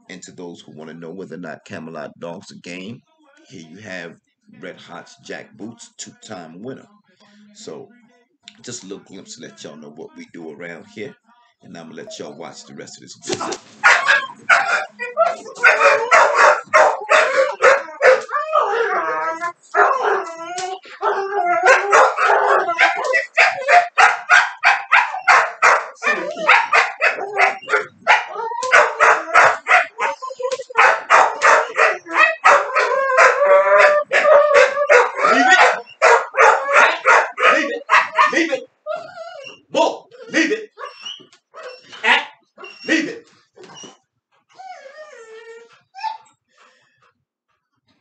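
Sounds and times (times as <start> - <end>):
dogs barking rapidly: 13.4 - 39.4, 40.2 - 43.0
dog howling whines: 13.9 - 42.9, 43.6 - 46.3.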